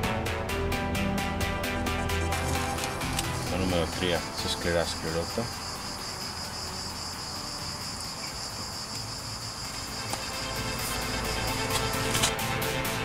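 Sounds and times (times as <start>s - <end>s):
background music with beat: 0.0s - 7.8s, 9.6s - 13.0s
crickets trilling: 1.6s - 13.0s.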